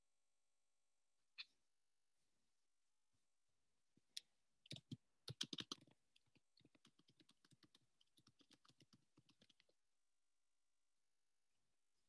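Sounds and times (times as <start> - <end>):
typing on computer keyboard: 4.7 - 9.7.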